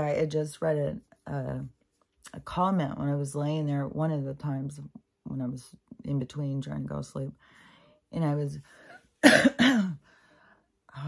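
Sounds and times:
woman coughing: 9.2s - 10.0s.

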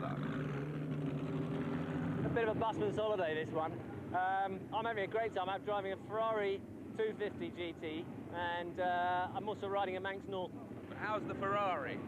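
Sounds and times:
car engine running steadily: 0.0s - 12.0s.

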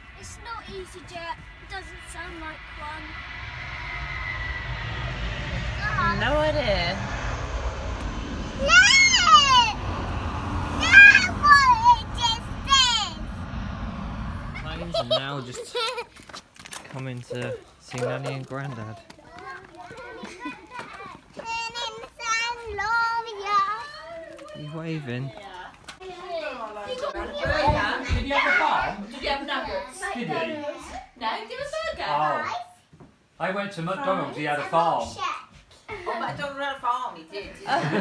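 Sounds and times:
car engine and road rumble: 0.0s - 15.4s
jet engine whine: 0.0s - 15.7s.

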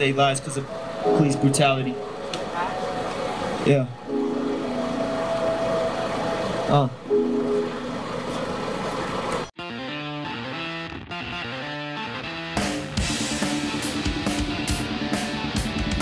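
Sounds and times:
backing track of held chords: 0.0s - 16.0s
guitar-based music: 9.6s - 16.0s.

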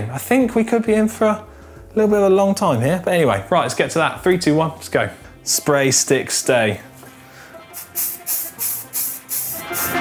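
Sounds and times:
background music: 0.0s - 10.0s
shaker keeping quick beat: 7.8s - 10.0s.

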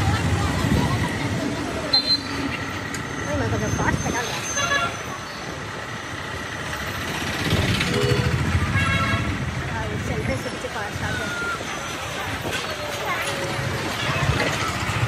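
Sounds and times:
car engines running: 0.0s - 15.0s
people talking in the street: 0.0s - 15.0s
vehicle horn tooting: 7.9s - 9.4s.

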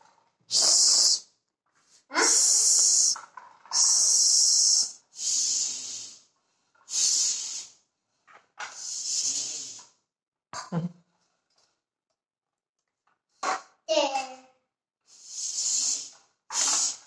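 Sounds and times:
bike pump hissing air: 0.5s - 1.2s, 2.2s - 6.2s, 6.9s - 7.8s, 8.7s - 9.9s, 15.1s - 17.0s.

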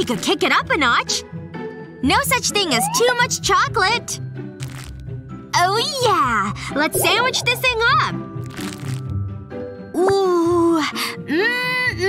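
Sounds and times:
background music: 0.0s - 12.0s
crisp crunch of sandwich: 4.6s - 5.0s, 8.4s - 9.2s.

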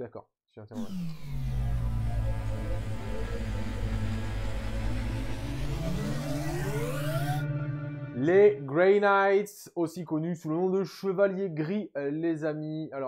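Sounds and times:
deep rumbling drone rising: 0.8s - 8.7s.

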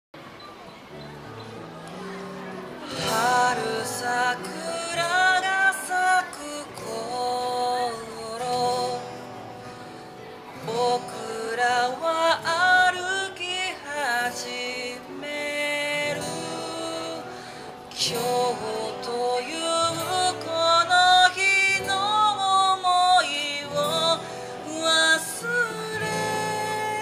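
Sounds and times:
acoustic guitar: 0.2s - 27.0s
man singing: 2.8s - 9.5s, 10.6s - 27.0s.

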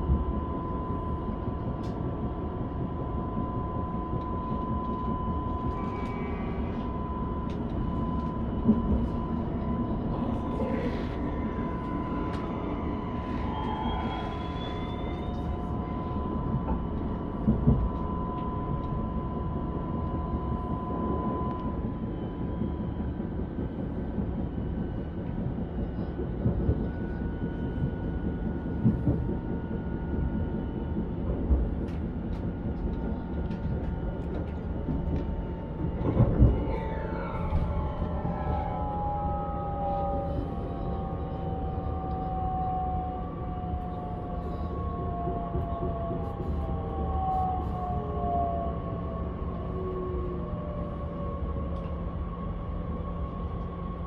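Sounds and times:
train rumbling on rails: 0.0s - 54.0s.

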